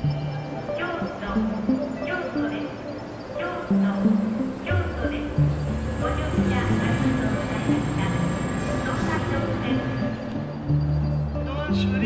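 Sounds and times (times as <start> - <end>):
train rumbling past platform: 4.6 - 11.4.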